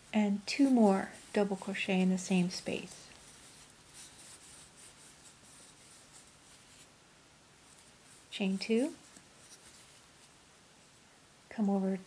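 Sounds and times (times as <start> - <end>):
yarn rustling over crochet hook: 0.0 - 7.0, 7.6 - 10.4.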